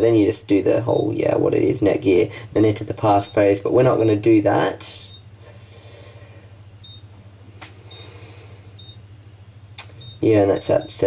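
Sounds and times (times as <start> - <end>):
low steady hum: 0.0 - 11.0
high-pitched key beeps: 5.0 - 5.3, 6.8 - 7.1, 8.8 - 9.0, 9.9 - 11.0
sharp clicks: 9.8 - 10.2.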